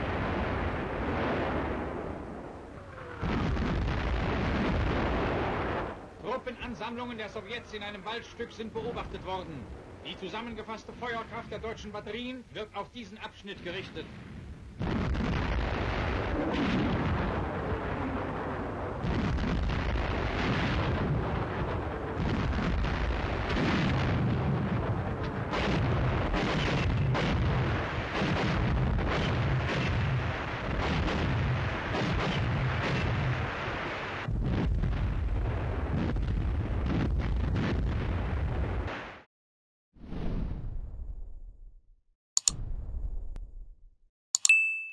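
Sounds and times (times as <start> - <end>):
gunfire: 14.8 - 34.7.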